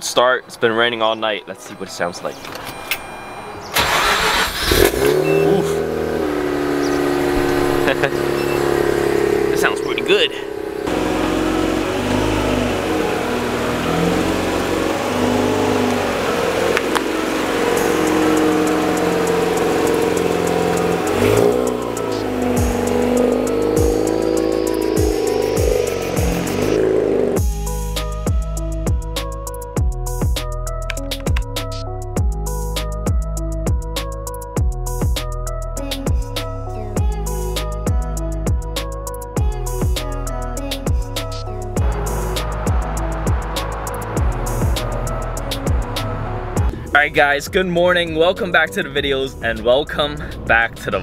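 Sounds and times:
rotary engine starting and idling: 3.7 - 27.4.

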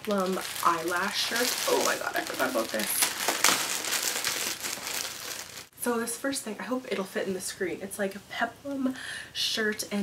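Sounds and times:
plastic bag crinkling: 0.0 - 5.7
sharp plastic crackles: 0.0 - 5.7.

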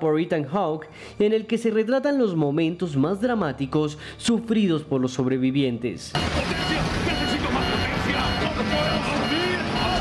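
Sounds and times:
muffled voices: 6.1 - 10.0
short high beeps: 6.2 - 10.0.

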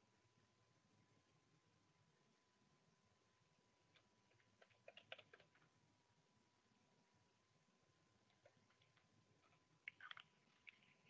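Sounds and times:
faint steady tone: 0.0 - 11.0.

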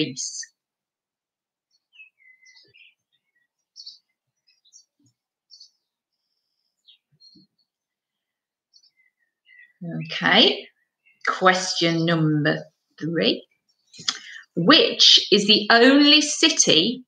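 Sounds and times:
faint birdsong: 0.0 - 17.0.

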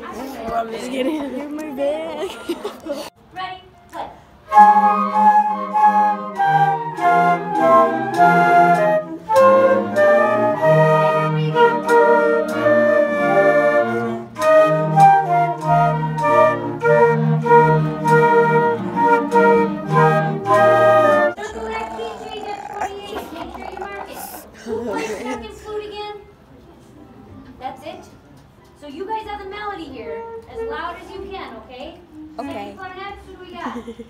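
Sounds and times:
flutes playing a melody: 4.5 - 21.4.

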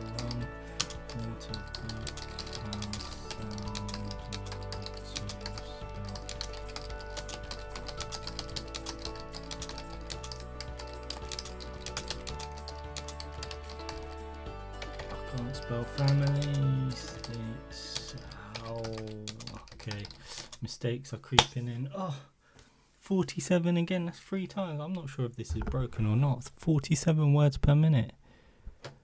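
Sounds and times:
background music: 0.0 - 20.5
keyboard typing fast: 0.0 - 20.6.

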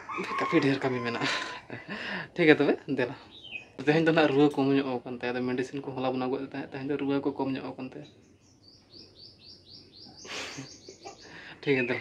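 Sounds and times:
small bird chirping: 3.2 - 4.5, 7.2 - 12.0.

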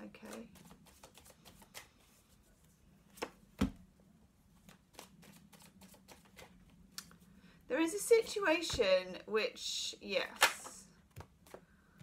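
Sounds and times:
cards being shuffled: 0.2 - 2.4, 4.6 - 7.2, 10.4 - 11.7.

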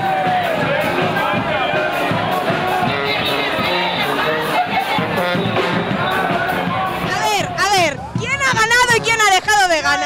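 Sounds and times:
crowd noise: 0.0 - 10.0
music playing: 0.0 - 10.0
women laughing and calling out: 4.3 - 5.2.

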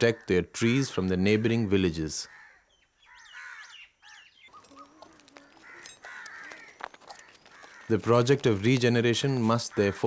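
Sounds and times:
harsh crow-like calls: 2.2 - 8.6, 9.2 - 10.0.

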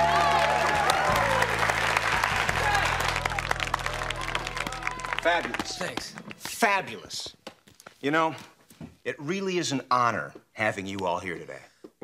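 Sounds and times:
audience applauding: 0.0 - 6.8.

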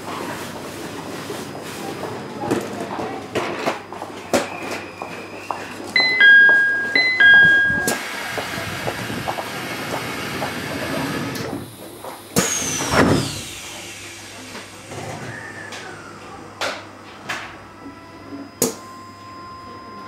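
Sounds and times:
train door closing chime: 6.0 - 9.0.

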